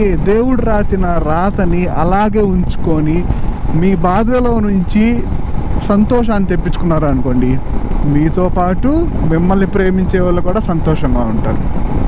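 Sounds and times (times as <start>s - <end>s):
man talking: 0.0s - 11.6s
motorcycle riding noise: 0.0s - 12.0s
wind rumble: 0.0s - 12.0s.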